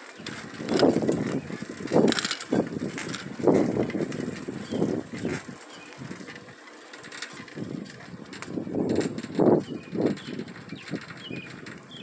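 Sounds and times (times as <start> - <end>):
bicycle rattles: 0.0 - 12.0
wind rushing gusts: 0.4 - 6.2.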